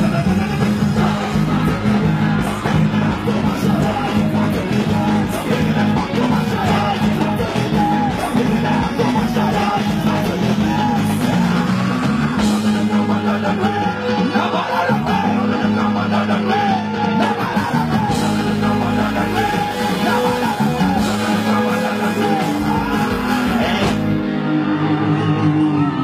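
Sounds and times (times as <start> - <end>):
loud music: 0.0 - 26.0
person singing: 0.0 - 26.0.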